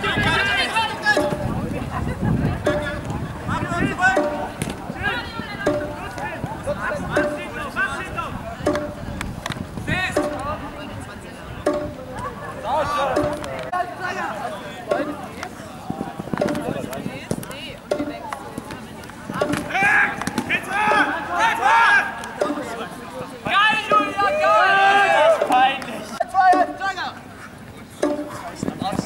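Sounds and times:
players calling out: 0.0 - 29.0
ringing beat: 0.2 - 9.3, 10.1 - 13.7, 14.8 - 15.6, 16.3 - 16.9, 17.8 - 18.4, 22.3 - 23.0, 23.7 - 27.0, 28.0 - 28.6.

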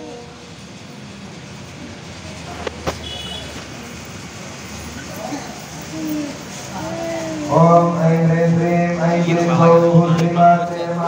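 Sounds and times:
low hum of crowded hall: 0.0 - 11.0
murmur of voices: 0.0 - 11.0.

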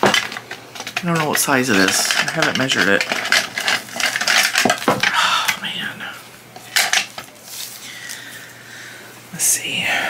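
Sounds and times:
small hard objects clattering: 0.0 - 5.9, 6.6 - 8.4.

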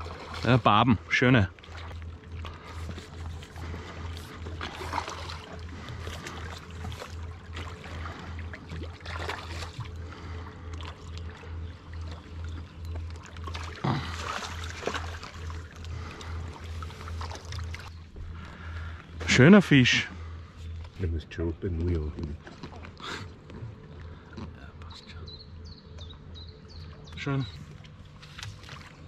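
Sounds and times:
water splashes: 0.0 - 20.0, 21.6 - 24.4, 26.9 - 29.0
low pulsing throb: 0.0 - 29.0.

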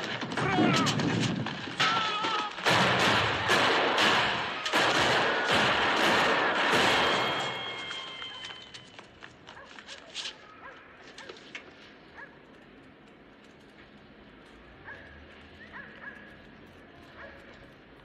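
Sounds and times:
pistol shots echoing: 1.7 - 8.8.

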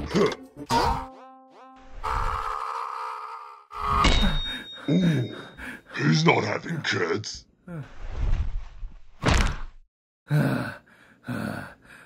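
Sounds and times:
man groaning in pain: 10.3 - 11.8.

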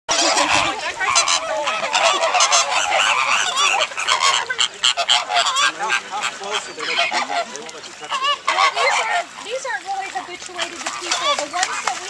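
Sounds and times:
flock of flamingos calling: 0.1 - 12.0.

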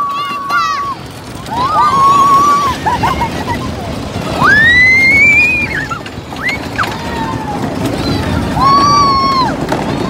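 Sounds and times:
roller coaster rumble: 0.0 - 10.0.

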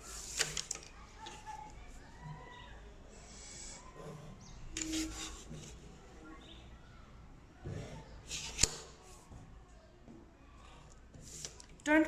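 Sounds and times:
pencil scratching along ruler: 4.8 - 5.8, 8.3 - 8.8.

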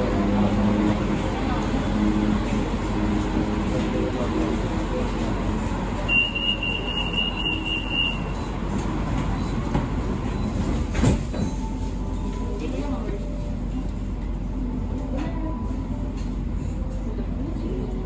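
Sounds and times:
train running rumble: 0.0 - 18.0.

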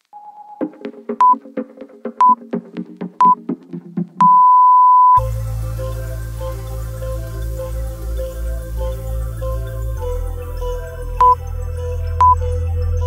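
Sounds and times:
electronic music with steady beat: 0.2 - 4.5, 5.2 - 13.0
timer beeps: 1.2 - 1.4, 4.2 - 5.2, 11.2 - 11.4.

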